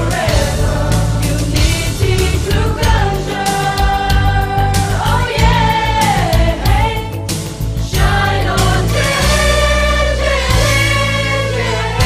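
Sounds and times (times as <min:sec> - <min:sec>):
choir singing held notes: 0:00.0 - 0:07.2, 0:07.8 - 0:12.0
instrumental backing with bass line: 0:00.0 - 0:12.0.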